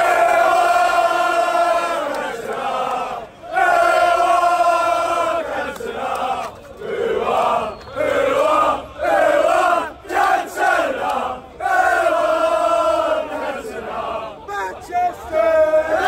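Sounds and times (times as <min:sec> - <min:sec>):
crowd of men chanting: 0:00.0 - 0:16.0.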